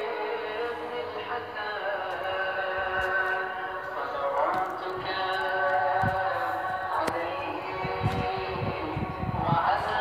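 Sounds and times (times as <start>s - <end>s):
music with sung long notes: 0.0s - 10.0s.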